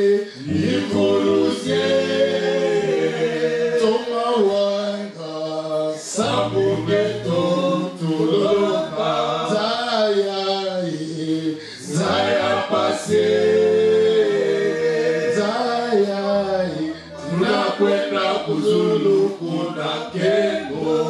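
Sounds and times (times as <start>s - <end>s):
men singing in harmony: 0.0s - 21.0s.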